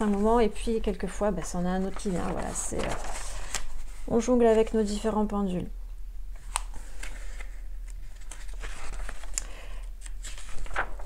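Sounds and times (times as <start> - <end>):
paper pages rustling: 0.0 - 5.0, 6.4 - 11.0
paper sheets flicking: 1.8 - 3.8, 8.2 - 11.0.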